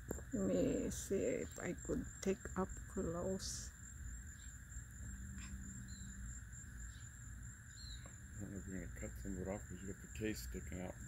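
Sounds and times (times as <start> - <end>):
insects buzzing: 0.0 - 11.0.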